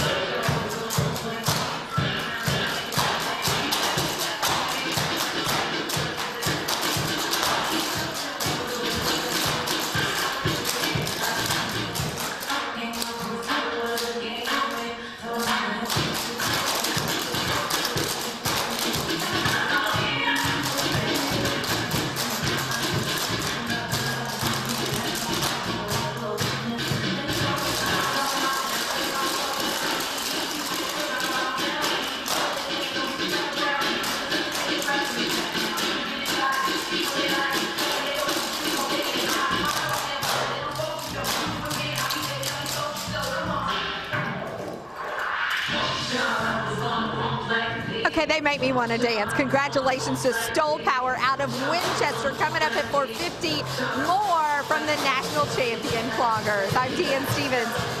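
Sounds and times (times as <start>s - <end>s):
recorded music track: 0.0s - 58.0s
clog dancers tapping on floor: 15.9s - 33.2s.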